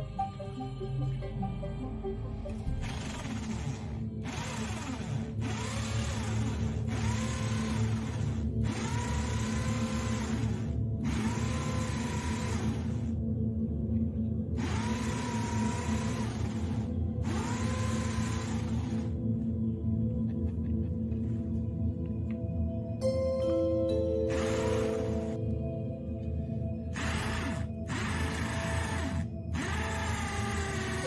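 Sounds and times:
background music: 0.0 - 31.0
cordless drill whining: 2.8 - 13.2, 14.6 - 19.2, 24.3 - 25.5, 26.9 - 31.0.

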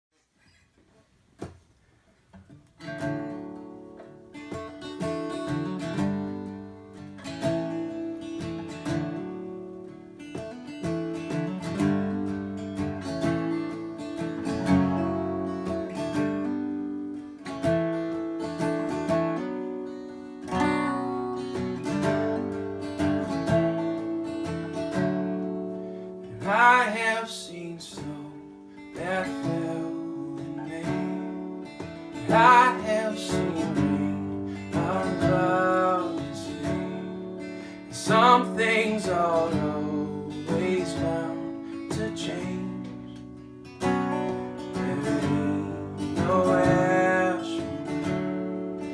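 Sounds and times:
acoustic guitar picked and strummed: 0.2 - 48.9.

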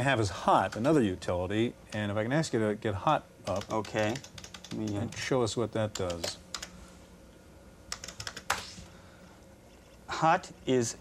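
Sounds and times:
keyboard keystrokes: 7.9 - 8.6.

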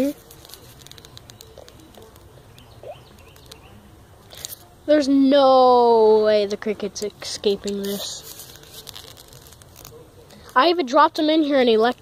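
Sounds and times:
soft bird calls: 0.2 - 4.5.

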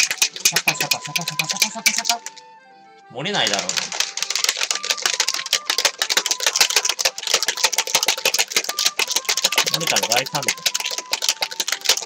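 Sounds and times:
shaker bottle rattling: 0.0 - 2.4, 3.4 - 12.0
liquid sloshing: 0.0 - 2.5, 3.5 - 12.0.

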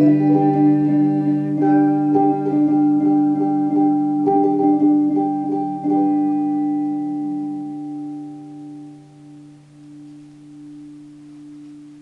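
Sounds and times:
electric guitar chord ringing: 0.0 - 12.0.

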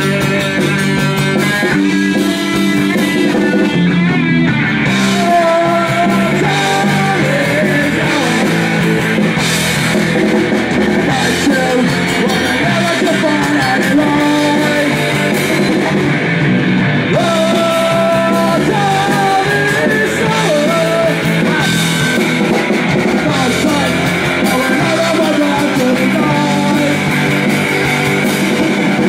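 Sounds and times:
man singing: 0.0 - 3.1, 4.9 - 9.2, 11.0 - 15.8, 17.1 - 22.2, 23.1 - 27.4
punk band playing loudly: 0.0 - 29.0.

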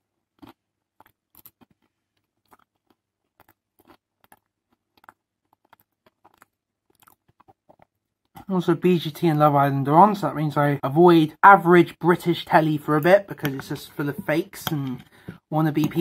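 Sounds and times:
faint chewing: 0.1 - 8.6, 11.8 - 16.0.

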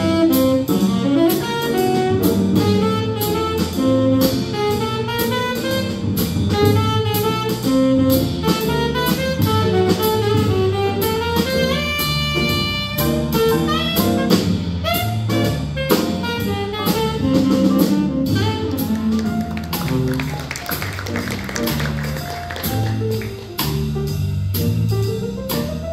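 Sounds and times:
drum kit cymbals: 0.0 - 20.1, 20.8 - 25.9
tenor saxophone solo: 0.0 - 23.7
electric bass: 0.0 - 25.9
piano: 0.0 - 25.9.

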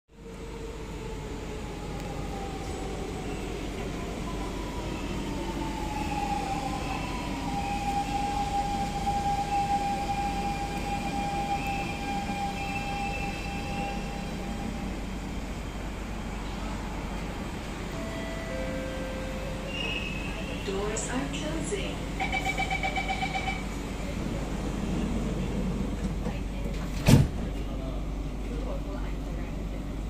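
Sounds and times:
metro train rumbling: 0.1 - 30.0.

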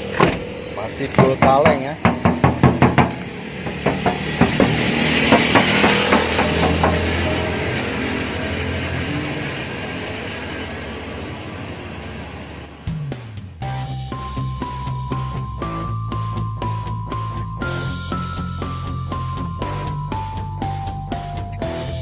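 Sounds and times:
knocking on car metal panel: 1.2 - 7.0
rushing noise: 2.0 - 20.3.

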